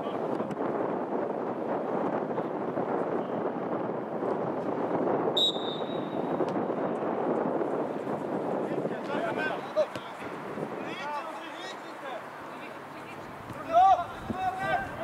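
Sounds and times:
outdoor background noise: 0.0 - 15.0
referee's whistle blast: 5.4 - 6.3.

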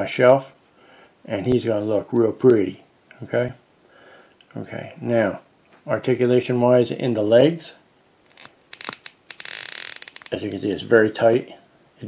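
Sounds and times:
plastic scraping rub: 8.3 - 10.7
plastic joints clicking: 8.3 - 10.8.

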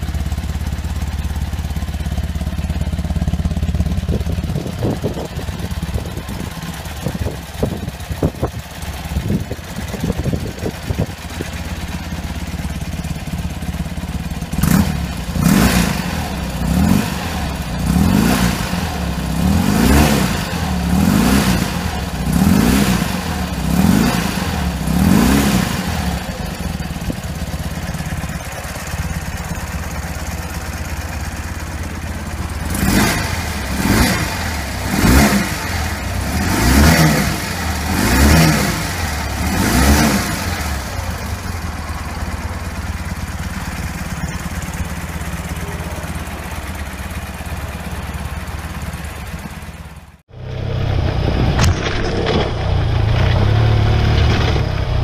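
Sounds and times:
motorcycle engine idling: 0.0 - 50.3
motorcycle engine revving: 0.0 - 55.0.

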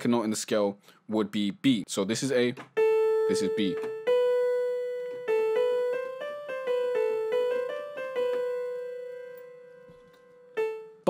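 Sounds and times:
software instrument melody: 2.7 - 11.0.

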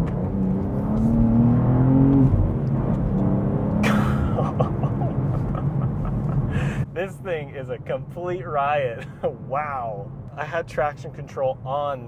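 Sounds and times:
car engine accelerating: 0.0 - 6.9.

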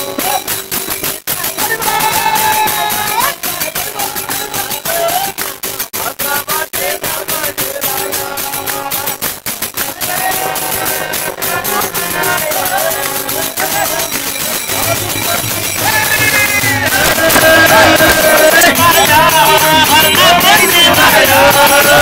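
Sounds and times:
hand claps: 0.0 - 22.0
harmonium: 0.0 - 22.0
tabla: 0.0 - 22.0
voices singing: 1.3 - 22.0.

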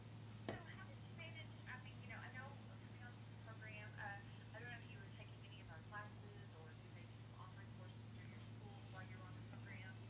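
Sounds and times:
person speaking over telephone: 0.5 - 10.0.

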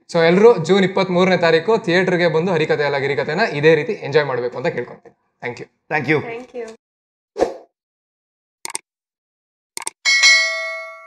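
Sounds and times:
quick double clicks: 8.6 - 8.8, 9.8 - 10.0
bright bell ding: 10.0 - 11.0.

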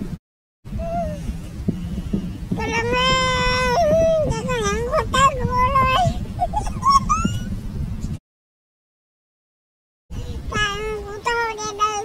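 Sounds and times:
low background rumble: 0.0 - 8.2, 10.1 - 12.0.

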